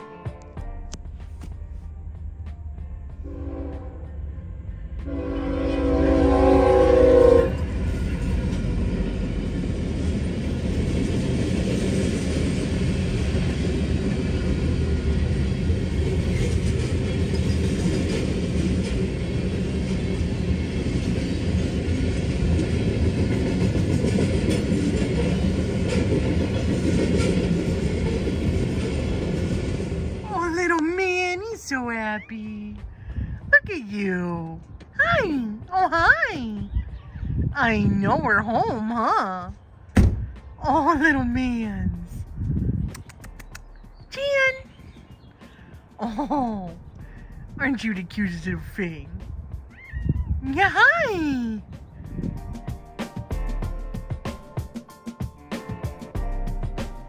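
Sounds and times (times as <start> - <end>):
train rumbling on rails: 0.0 - 57.0
train horn blasts: 3.2 - 4.2, 5.0 - 8.0.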